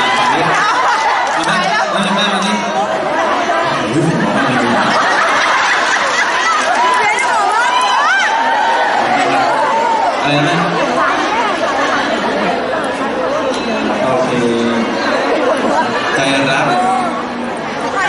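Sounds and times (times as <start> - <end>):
people chattering: 0.0 - 18.0.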